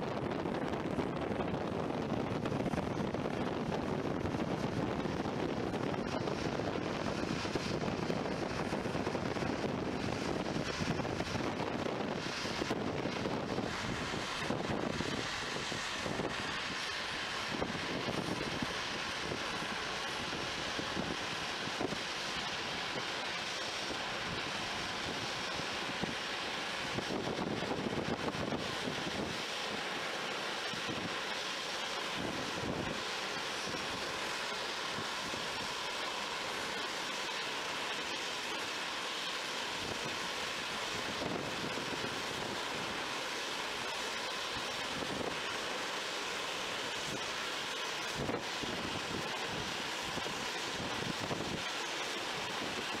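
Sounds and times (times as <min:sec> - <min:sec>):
wind buffeting microphone: 0:00.0 - 0:23.2, 0:23.8 - 0:29.5, 0:32.1 - 0:34.1, 0:39.7 - 0:43.1, 0:48.0 - 0:53.0
jet engines hissing at idle: 0:00.0 - 0:53.0.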